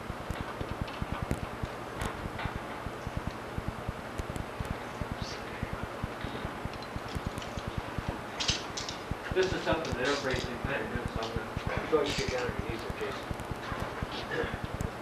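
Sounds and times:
low crackle: 0:00.0 - 0:15.0.

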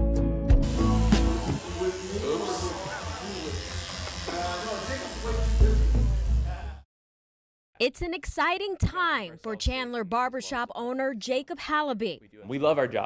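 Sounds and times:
background music: 0:00.0 - 0:06.6
electric hair clippers buzzing: 0:00.6 - 0:06.6.

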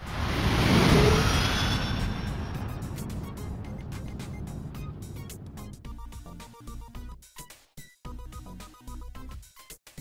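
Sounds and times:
rushing whoosh: 0:00.0 - 0:06.4.

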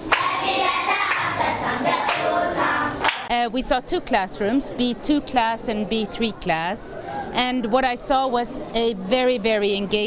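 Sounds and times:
children singing in unison: 0:00.0 - 0:03.3.

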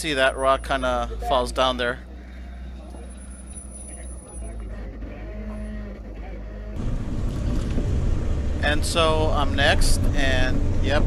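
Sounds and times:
engine humming: 0:00.0 - 0:11.0
engine rumbling: 0:00.0 - 0:11.0.

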